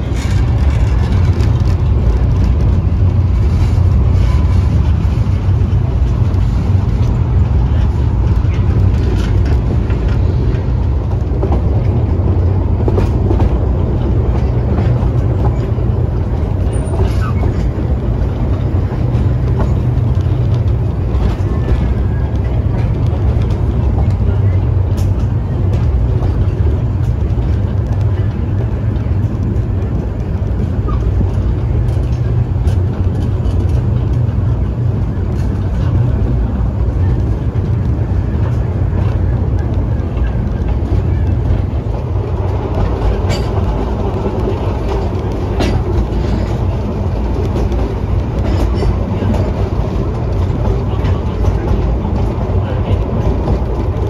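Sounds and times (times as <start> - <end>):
train wheels rumbling on track: 0.0 - 54.0.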